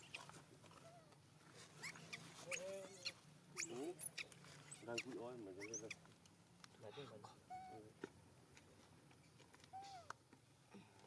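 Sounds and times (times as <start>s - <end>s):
baby monkey squeaking: 1.8s - 6.0s, 7.5s - 7.8s.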